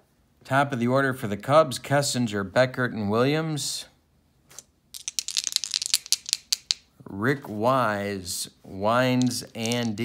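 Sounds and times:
dice rattling in hand: 4.5 - 6.9, 9.1 - 10.0.

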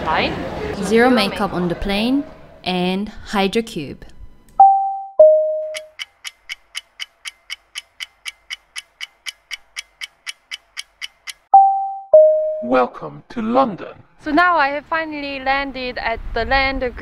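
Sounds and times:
clock ticking quickly: 5.7 - 11.5
two-note descending chime: 11.6 - 12.8.

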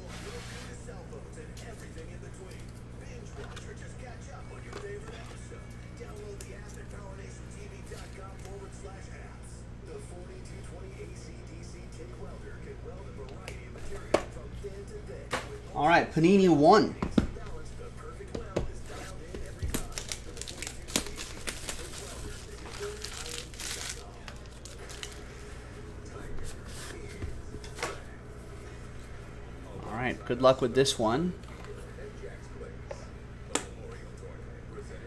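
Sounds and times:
faint background music: 0.0 - 35.0
low electrical hum: 0.0 - 35.0.

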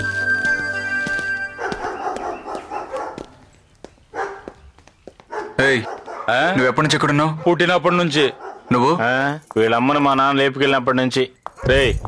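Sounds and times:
background music: 0.0 - 2.9
faint street sounds: 0.0 - 12.0
dog barking: 1.6 - 3.4, 4.1 - 4.6, 5.3 - 8.9.

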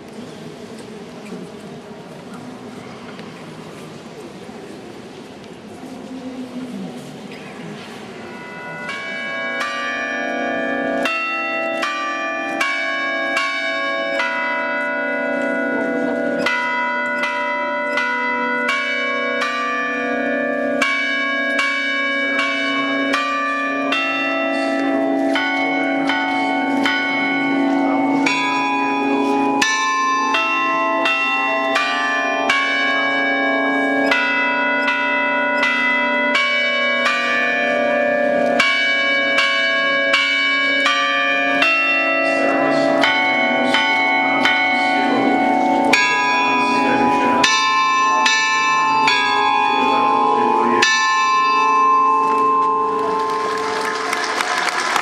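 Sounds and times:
church bells ringing: 7.0 - 55.0.

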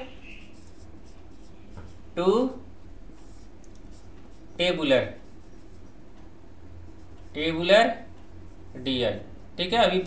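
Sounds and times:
marker pen scratching on whiteboard: 0.0 - 2.2, 3.1 - 6.0
low background hum: 0.0 - 10.0.

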